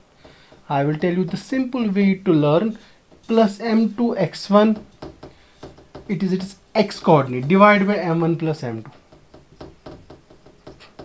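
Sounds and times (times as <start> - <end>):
marker writing on whiteboard: 0.2 - 11.0.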